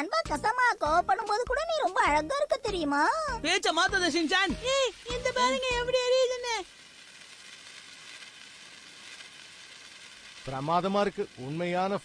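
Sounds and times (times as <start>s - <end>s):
person speaking: 0.0s - 6.6s
sparkler fizzing: 0.0s - 12.0s.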